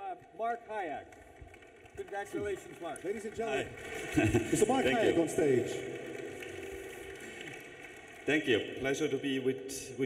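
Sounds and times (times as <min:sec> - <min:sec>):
faint audience applause: 0:00.0 - 0:09.1.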